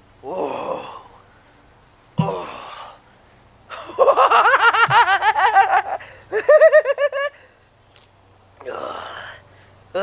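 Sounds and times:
man sighing: 0:00.2 - 0:01.2.

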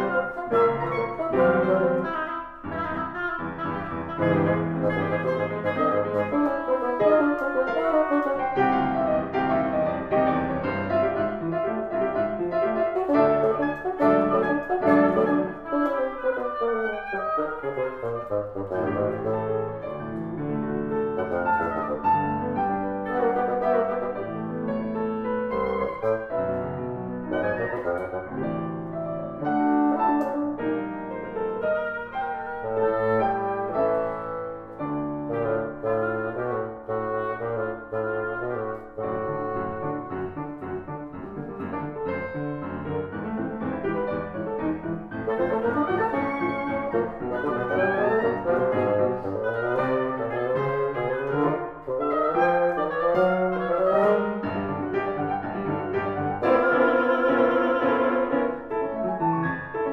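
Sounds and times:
bassoon: 0:00.0 - 0:59.9
oboe: 0:00.0 - 0:59.9
piano: 0:00.0 - 0:59.9.

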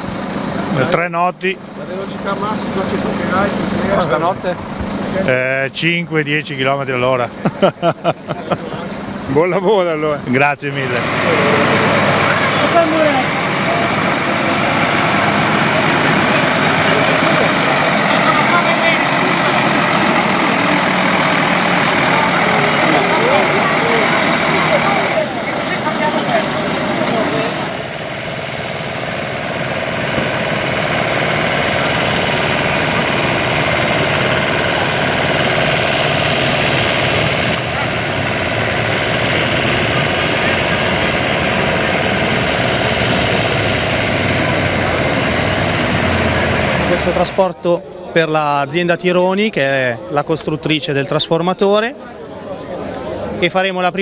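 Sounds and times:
crowd chatter: 0:00.0 - 0:54.0
diesel truck engine running: 0:00.0 - 0:54.0.

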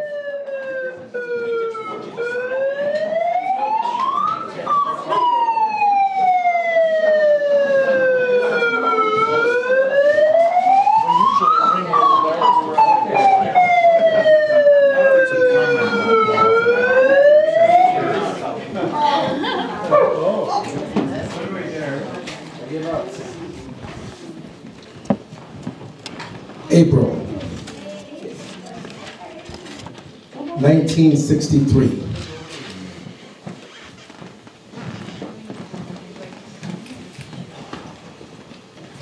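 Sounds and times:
siren wailing: 0:00.0 - 0:18.4
voices: 0:01.1 - 0:24.6.

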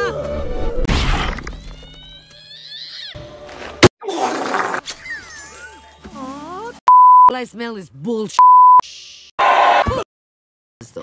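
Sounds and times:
animated film music: 0:00.0 - 0:06.8.

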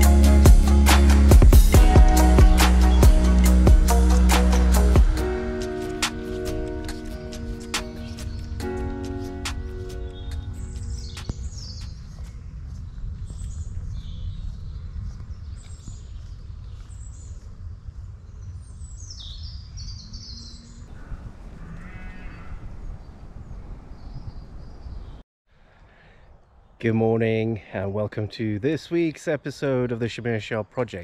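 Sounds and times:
music: 0:00.0 - 0:11.8
small birds singing and chirping: 0:01.8 - 0:05.0, 0:07.6 - 0:09.2, 0:09.8 - 0:20.9, 0:22.3 - 0:25.2.

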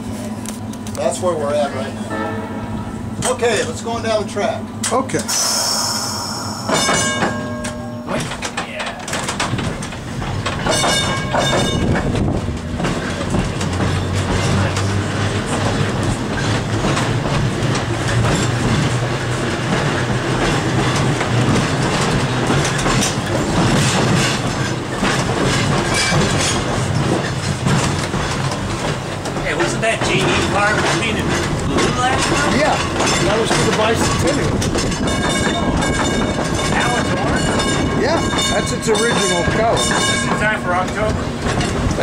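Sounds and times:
streetcar gong strike: 0:01.6 - 0:08.7, 0:10.3 - 0:26.6, 0:30.1 - 0:41.9
rail joint clicks: 0:02.0 - 0:42.0
air hissing: 0:05.3 - 0:07.2.

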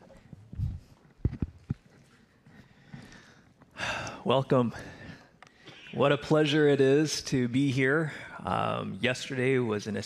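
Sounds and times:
footsteps in dress shoes: 0:00.0 - 0:03.7.

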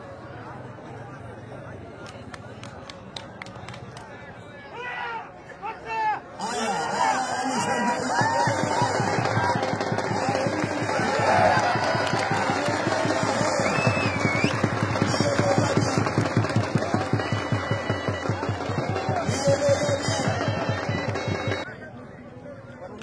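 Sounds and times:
voices shouting: 0:04.7 - 0:21.7
fast steady drumbeat: 0:07.6 - 0:21.6.

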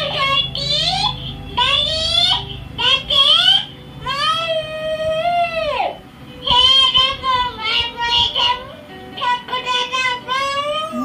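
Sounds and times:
child singing into microphone: 0:00.0 - 0:11.0.

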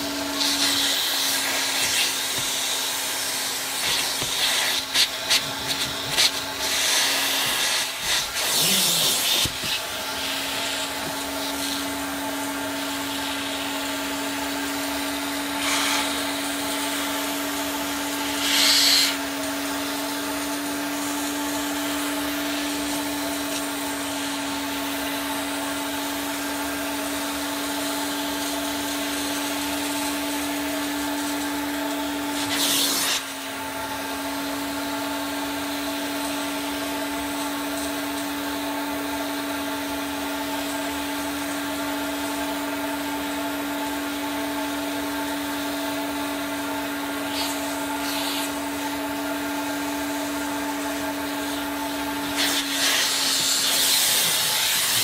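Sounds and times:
carpet extractor motor drone: 0:00.0 - 0:55.0.

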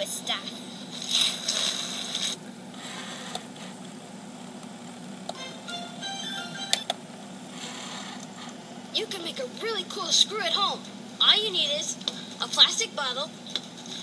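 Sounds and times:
menu music through small speaker: 0:05.4 - 0:06.9.

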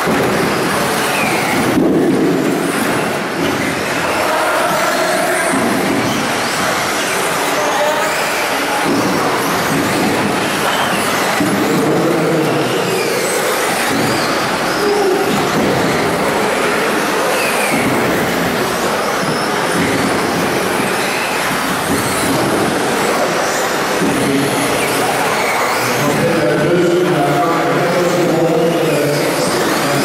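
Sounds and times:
rc car motors whining: 0:00.0 - 0:30.0
tyre and hall noise: 0:00.0 - 0:30.0.

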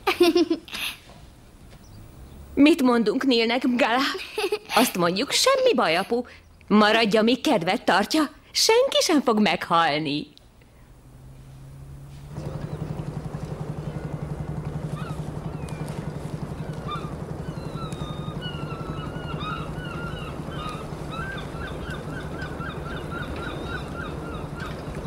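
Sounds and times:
low pulsing engine drone: 0:01.4 - 0:02.6, 0:10.4 - 0:25.0
birds chirping: 0:01.7 - 0:08.2, 0:08.9 - 0:25.0.

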